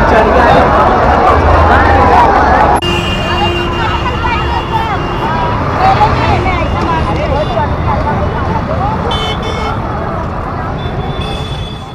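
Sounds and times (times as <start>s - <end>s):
chatter of many voices: 0.0s - 11.9s
traffic rumble: 0.0s - 11.9s
vehicle horns: 2.8s - 7.7s, 9.0s - 9.9s, 10.7s - 11.9s.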